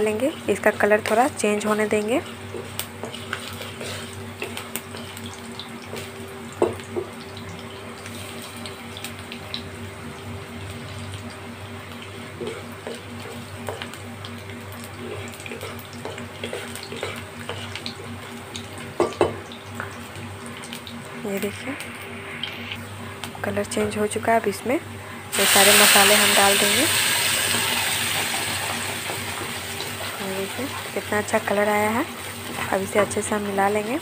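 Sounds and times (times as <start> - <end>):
garlic sizzling in hot oil: 0.0 - 34.0
steady low hum: 8.4 - 28.0.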